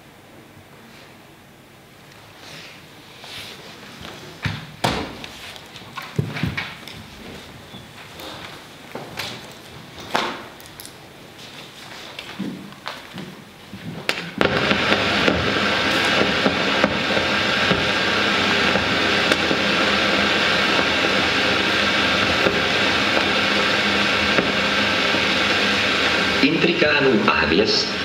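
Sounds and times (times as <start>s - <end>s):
dense steady noise: 14.3s - 28.0s.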